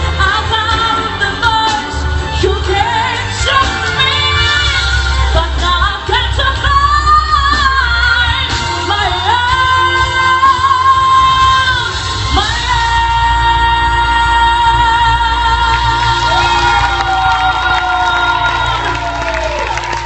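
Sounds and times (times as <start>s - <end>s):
woman singing pop song: 0.0s - 19.6s
backing music: 0.0s - 20.0s.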